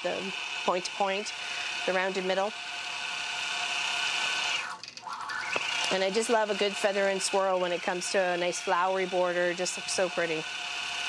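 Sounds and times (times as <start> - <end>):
quilting machine motor whining: 0.0 - 11.0.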